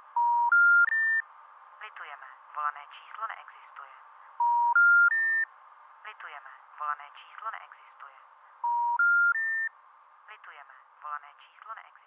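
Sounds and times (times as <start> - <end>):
rising telephone beeps: 0.2 - 1.2, 4.4 - 5.5, 8.6 - 9.7.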